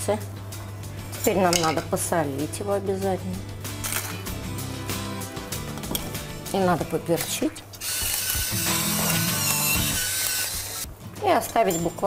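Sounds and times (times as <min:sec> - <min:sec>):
pepper mill grinding: 0:07.8 - 0:10.9.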